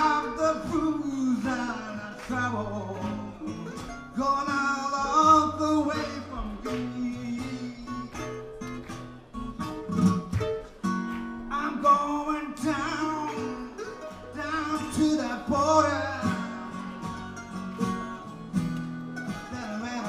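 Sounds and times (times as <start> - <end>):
acoustic guitar: 0.0 - 20.0
mandolin: 0.0 - 20.0.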